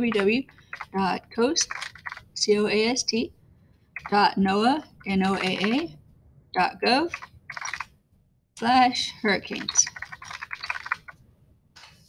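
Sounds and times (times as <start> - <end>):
keyboard typing clicks: 0.0 - 1.0, 1.6 - 2.3, 5.3 - 5.9, 7.1 - 7.9, 9.5 - 11.2.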